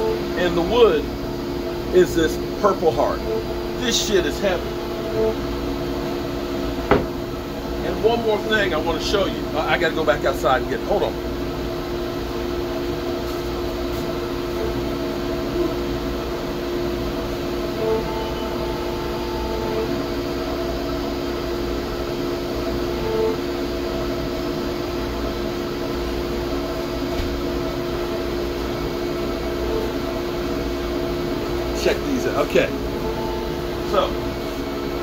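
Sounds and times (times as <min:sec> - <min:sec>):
workshop machinery humming: 0:00.0 - 0:35.0.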